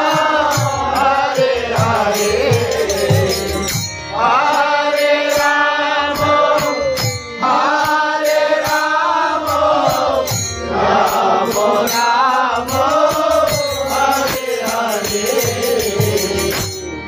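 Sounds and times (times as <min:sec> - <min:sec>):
harmonium: 0:00.0 - 0:17.0
voices singing a chant: 0:00.0 - 0:17.0.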